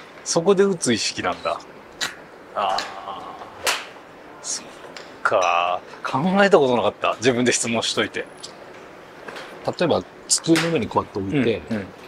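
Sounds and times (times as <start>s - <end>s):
golf club striking ball: 3.6s - 4.0s.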